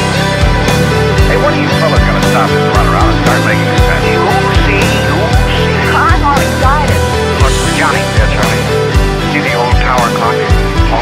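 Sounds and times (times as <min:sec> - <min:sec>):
bending lead guitar line: 0:00.0 - 0:11.0
heavy rock band: 0:00.0 - 0:11.0.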